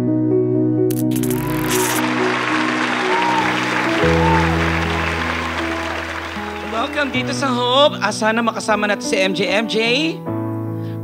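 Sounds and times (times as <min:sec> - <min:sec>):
audience applauding: 0:01.1 - 0:07.9
background music of held chords: 0:02.0 - 0:11.0.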